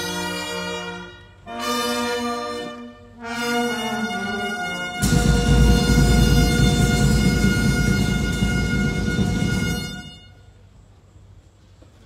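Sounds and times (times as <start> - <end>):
brass music held chord: 0.0 - 10.3.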